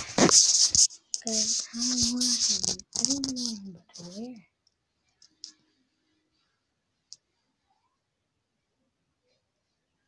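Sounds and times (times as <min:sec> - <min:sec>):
child's voice: 0:01.2 - 0:04.4.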